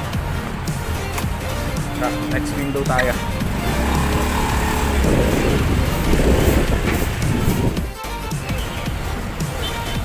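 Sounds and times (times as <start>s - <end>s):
vehicle rumble: 0.0s - 8.0s
background music: 0.0s - 10.0s
wind buffeting microphone: 3.5s - 8.0s.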